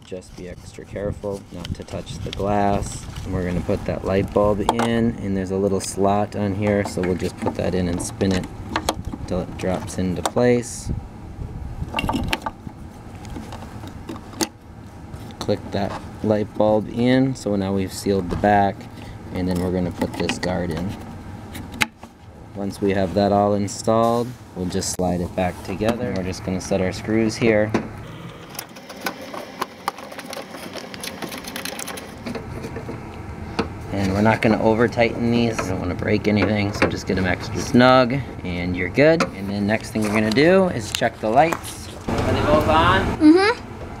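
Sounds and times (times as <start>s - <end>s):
low background rumble: 0.0s - 28.7s.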